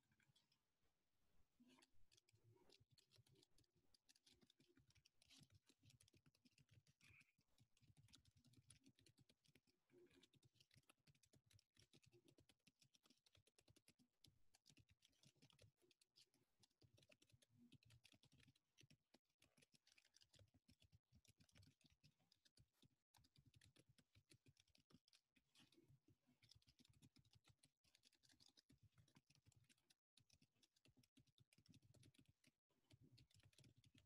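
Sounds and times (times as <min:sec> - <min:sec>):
typing on computer keyboard: 0:02.1 - 0:34.0.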